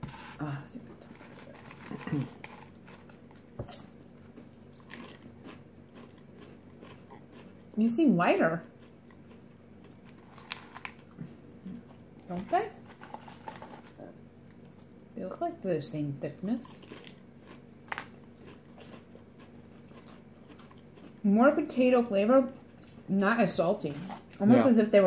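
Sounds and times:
chips crunching: 0:01.0 - 0:07.6, 0:08.8 - 0:11.2, 0:12.3 - 0:14.9, 0:16.6 - 0:21.2.

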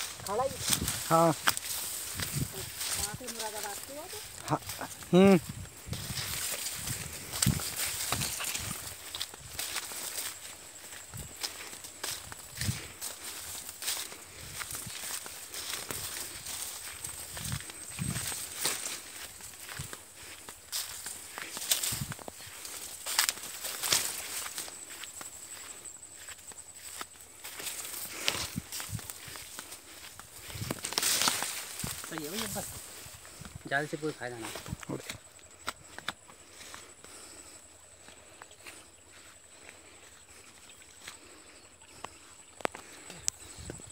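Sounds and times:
cane leaves rustling and crackling: 0:00.0 - 0:40.5.

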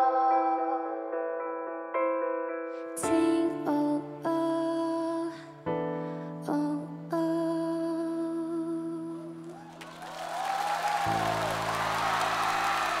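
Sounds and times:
soft ballad accompaniment: 0:00.0 - 0:09.6.

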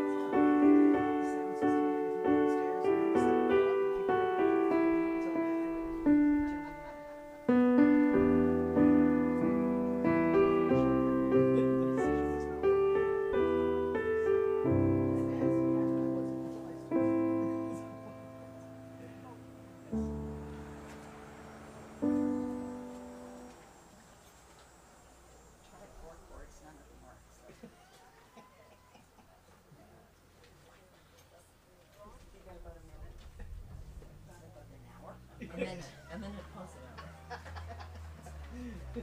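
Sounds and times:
slow piano chords: 0:00.0 - 0:27.1.

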